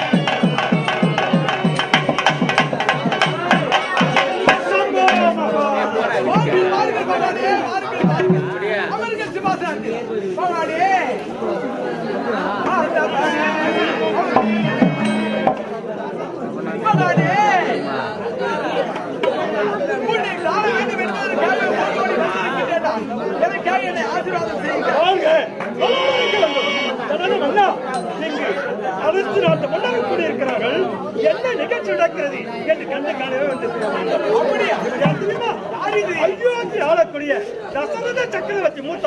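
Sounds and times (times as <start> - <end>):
held instrumental note: 0.0 - 9.3, 13.2 - 16.0
actors declaiming: 0.0 - 9.7
overlapping voices talking: 0.0 - 39.0.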